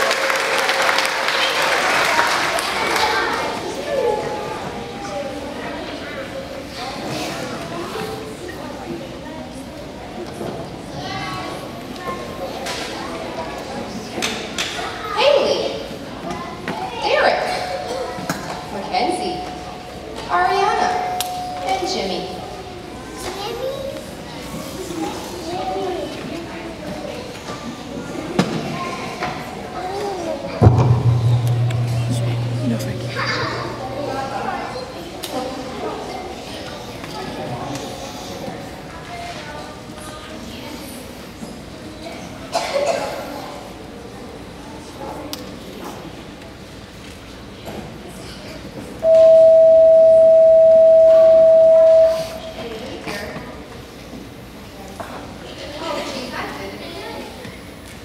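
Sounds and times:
chatter of voices in a hall: 0.0 - 58.0
sharp knock: 30.6 - 34.4
loud high steady tone: 30.6 - 34.8, 49.0 - 52.6.

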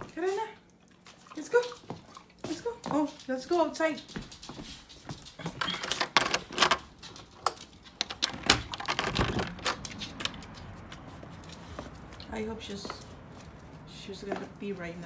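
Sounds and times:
door lock clicks and rattles: 5.8 - 6.9, 8.0 - 10.4.

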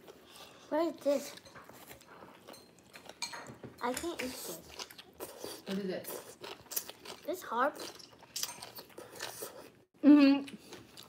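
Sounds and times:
crisp chewing crunches: 4.2 - 9.7.

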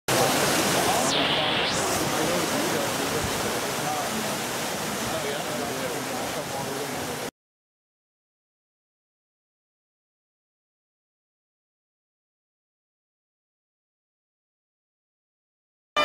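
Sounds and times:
running water rushing: 0.0 - 7.3
people talking indistinctly: 0.1 - 7.3.

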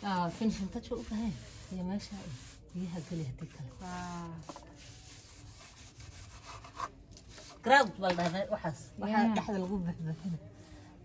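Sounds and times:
tiles scraping on wet cement: 0.0 - 10.4.

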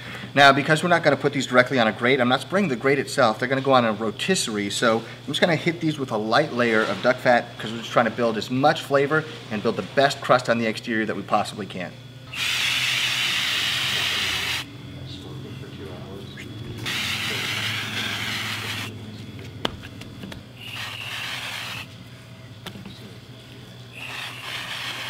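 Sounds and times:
aerosol spray hissing: 12.3 - 14.6, 16.8 - 19.0, 20.6 - 21.9, 24.0 - 25.0.

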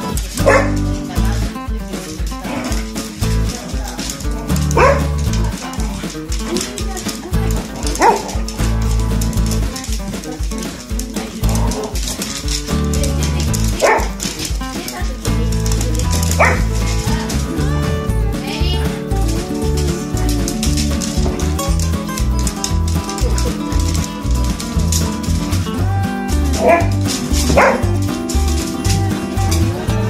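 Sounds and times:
background music with steady beat: 0.0 - 30.0
dog yelp: 0.4 - 0.9, 4.7 - 5.3, 7.8 - 8.5, 13.7 - 14.2, 16.4 - 16.7, 26.5 - 28.2.

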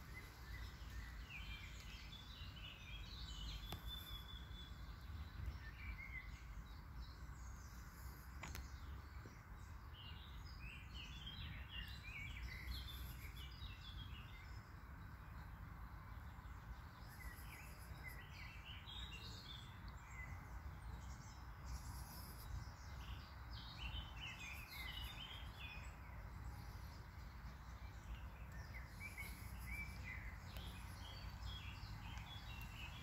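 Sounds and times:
songbird singing: 0.0 - 33.0.

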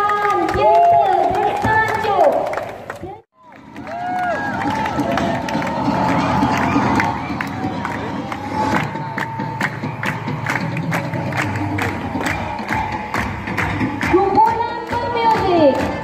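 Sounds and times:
people clapping in rhythm: 0.0 - 16.0
music: 3.4 - 16.0.

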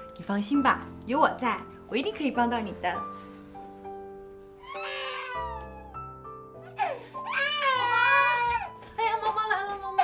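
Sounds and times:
soft background music: 0.0 - 10.0
baby crying: 4.6 - 8.8.

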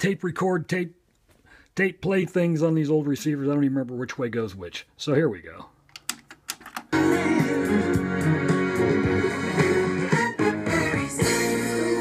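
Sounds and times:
cassette deck control clicks: 5.9 - 7.0
recorded music from speakers: 7.0 - 12.0.

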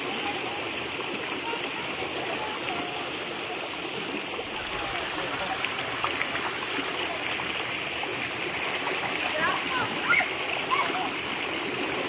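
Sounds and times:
stream running: 0.0 - 12.0
children splashing in water: 8.2 - 12.0
children calling out: 9.4 - 11.2.

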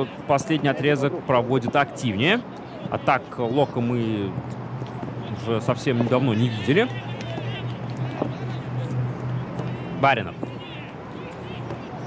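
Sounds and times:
faint shouts of players: 5.1 - 8.8, 9.4 - 12.0.

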